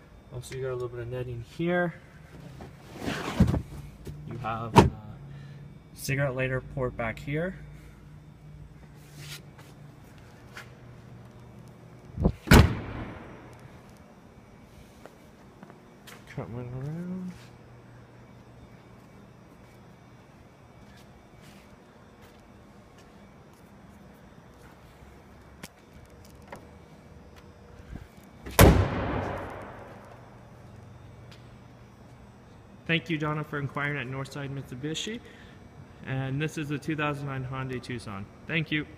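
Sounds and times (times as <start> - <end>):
car door slamming shut: 12.4 - 13.2, 28.5 - 29.8
car liftgate slamming: 12.4 - 13.2.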